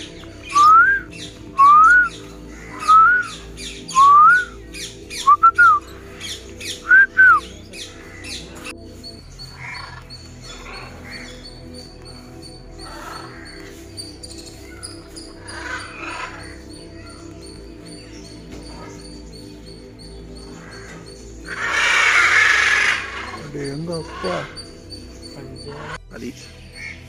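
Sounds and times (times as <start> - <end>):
music: 0.0 - 27.0
bird whistling calls: 0.4 - 8.4.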